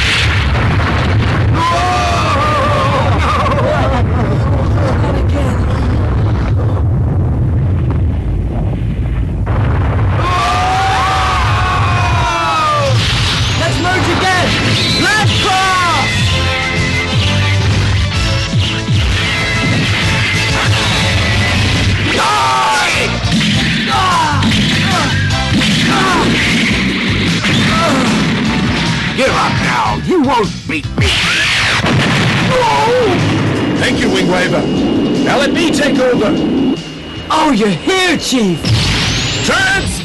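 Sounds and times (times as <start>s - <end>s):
crash sound effect: 0.0s - 4.1s, 5.8s - 29.9s, 31.0s - 40.0s
deep rumble: 0.0s - 40.0s
dramatic background music: 12.1s - 40.0s
wavering whistling tones: 34.0s - 39.5s.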